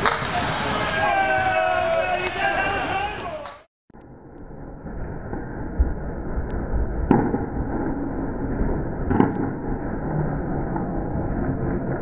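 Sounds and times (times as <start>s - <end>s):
low rumble of bowling alley: 0.2s - 12.0s.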